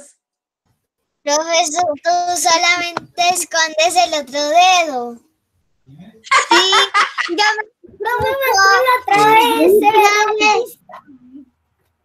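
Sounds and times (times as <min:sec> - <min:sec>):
child sing-song voice: 0:07.4 - 0:11.4.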